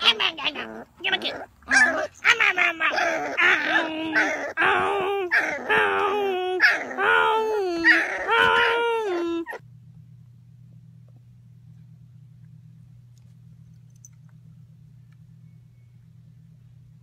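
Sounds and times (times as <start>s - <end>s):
person and puppy howling: 0.0s - 9.6s.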